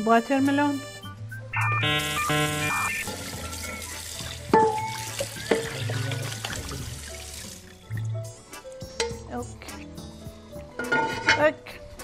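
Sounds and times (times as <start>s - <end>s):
background music: 0.0s - 12.0s
faucet running into sink: 3.0s - 8.1s.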